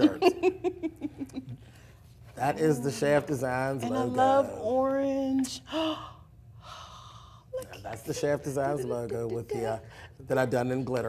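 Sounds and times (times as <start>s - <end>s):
person speaking: 2.3s - 5.9s, 7.5s - 11.0s.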